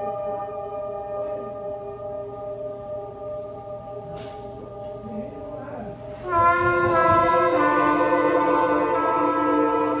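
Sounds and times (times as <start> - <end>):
ambient drone chord: 0.0 - 10.0.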